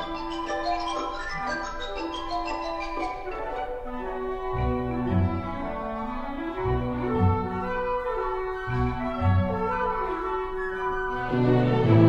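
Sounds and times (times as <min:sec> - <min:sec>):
orchestra holding notes: 0:00.0 - 0:12.0.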